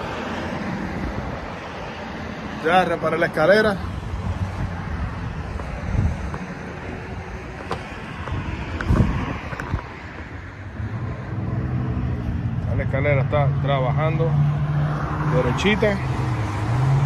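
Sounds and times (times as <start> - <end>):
road traffic: 0.0 - 17.0
wind on microphone: 3.9 - 11.4.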